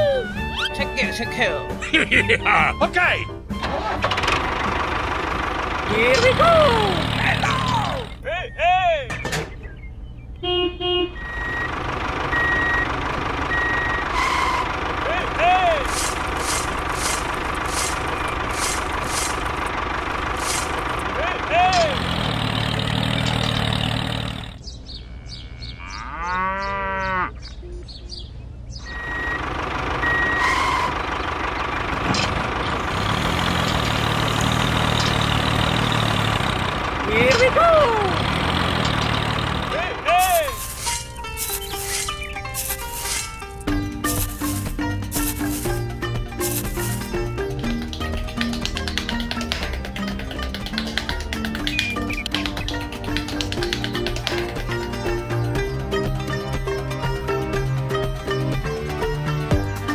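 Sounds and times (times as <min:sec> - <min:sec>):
steady vehicle drone: 0:00.0 - 0:08.3, 0:09.6 - 0:25.7, 0:27.4 - 0:59.9
short reversing beeps: 0:11.2 - 0:14.6, 0:28.8 - 0:30.9
rising-and-falling calls: 0:28.8 - 0:36.6.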